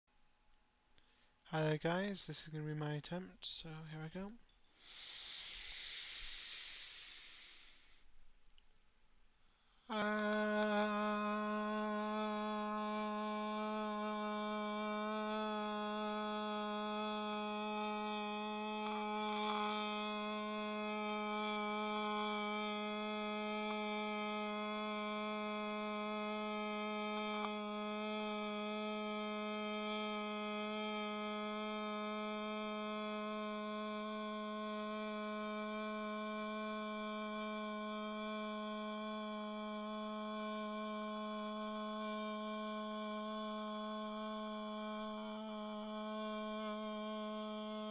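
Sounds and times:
man holding a sung note: 0:01.0 - 0:08.3, 0:09.5 - 0:47.9.

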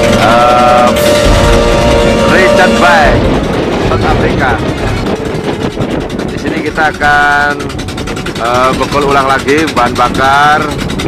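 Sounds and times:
long held note: 0:00.0 - 0:06.3
steady low rumble: 0:00.0 - 0:11.0.

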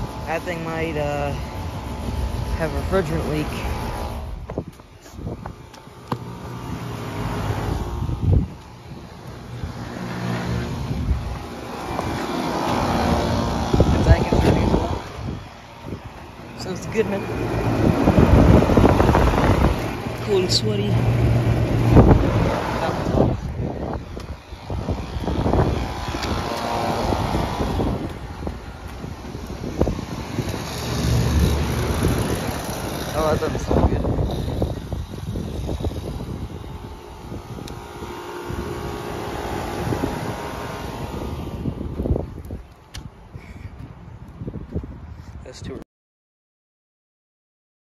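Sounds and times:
air conditioning units humming: 0:00.0 - 0:43.3
wind: 0:00.0 - 0:45.9.

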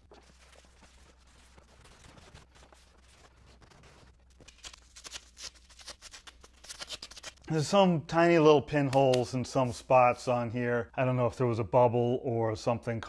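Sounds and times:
hands handling materials: 0:00.0 - 0:07.5.

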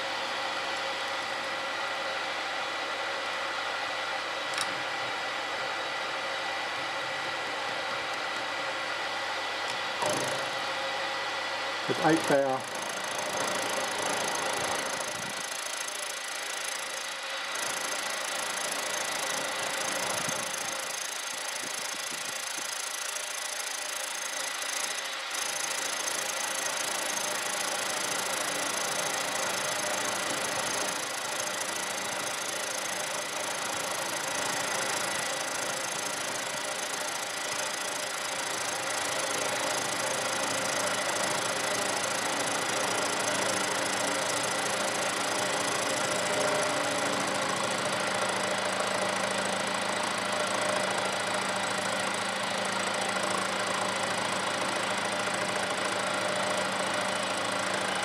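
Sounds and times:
milling machine running: 0:09.9 - 0:58.0.

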